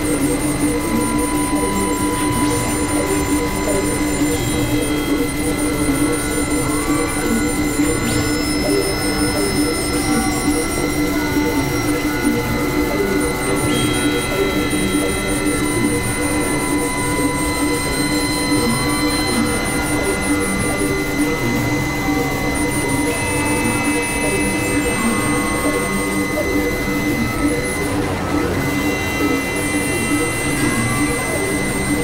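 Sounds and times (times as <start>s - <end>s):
electronic drone music: 0.0s - 32.0s
fast faint high ticking pulse: 0.0s - 32.0s.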